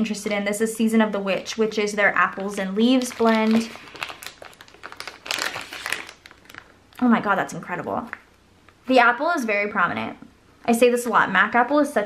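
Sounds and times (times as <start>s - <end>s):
plastic bag crinkling: 2.1s - 7.0s.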